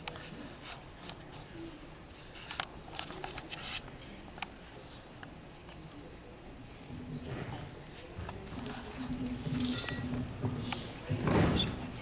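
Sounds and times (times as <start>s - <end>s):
soft clicks and rustles: 0.0s - 5.9s.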